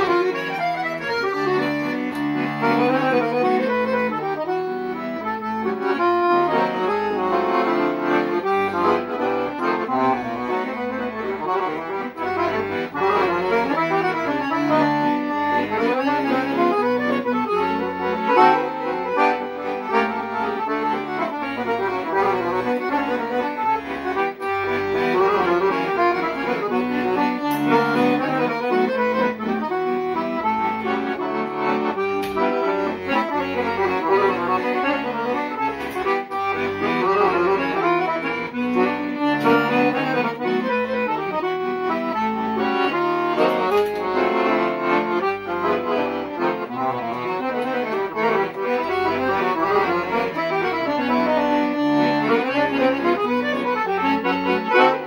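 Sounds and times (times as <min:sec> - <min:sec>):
piano accordion playing: 0:00.0 - 0:55.0.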